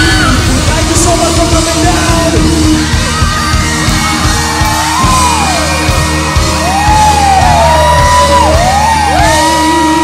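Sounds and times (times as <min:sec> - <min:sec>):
bass: 0:00.0 - 0:10.0
drum beat: 0:00.0 - 0:10.0.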